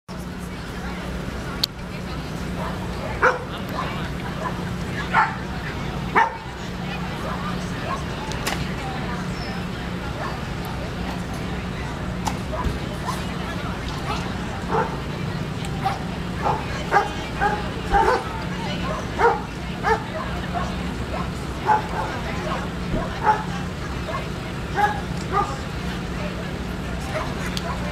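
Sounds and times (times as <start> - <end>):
background chatter: 0.1 - 27.9
dog barking: 2.6 - 5.4, 6.1 - 6.5, 14.1 - 15.0, 15.8 - 25.6.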